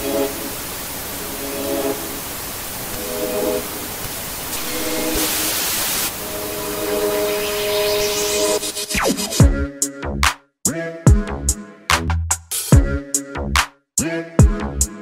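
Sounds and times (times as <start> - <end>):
television static hiss: 0.0 - 9.4.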